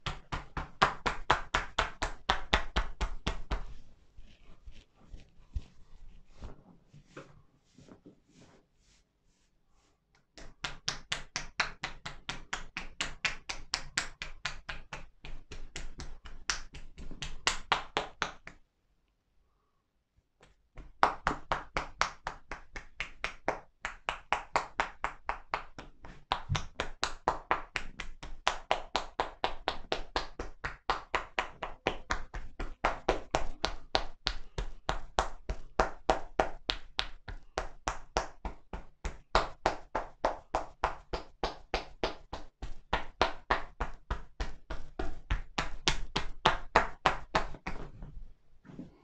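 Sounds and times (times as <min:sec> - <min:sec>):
hands slapping shoulders: 0:00.0 - 0:08.0, 0:10.1 - 0:18.6, 0:20.4 - 0:48.2.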